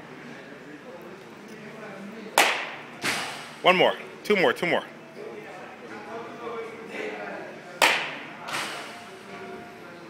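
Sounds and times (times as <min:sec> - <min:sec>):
bat hitting baseball: 0:02.4 - 0:03.4, 0:07.8 - 0:08.7.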